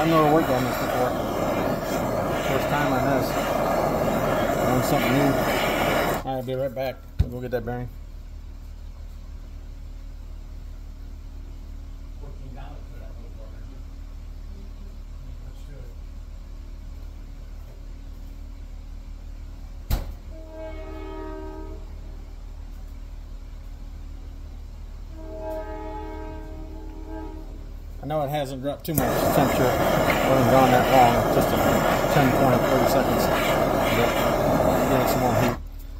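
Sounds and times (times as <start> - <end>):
steady low hum: 0.0 - 35.9
chord horn blasts: 20.3 - 22.0, 25.1 - 27.8.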